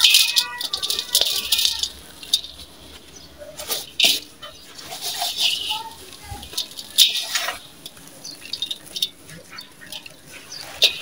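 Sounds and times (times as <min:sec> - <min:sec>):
gritty crunching of crushed cement: 0:00.0 - 0:11.0.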